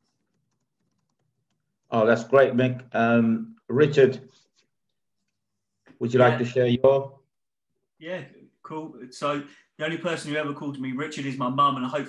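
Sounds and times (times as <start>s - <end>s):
man speaking: 1.9s - 4.4s, 6.0s - 7.2s, 8.0s - 12.0s.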